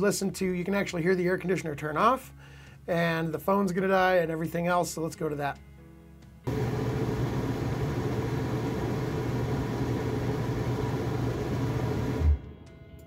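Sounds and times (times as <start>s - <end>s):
air conditioner fan and compressor: 6.5s - 12.4s
low hum: 6.5s - 12.4s.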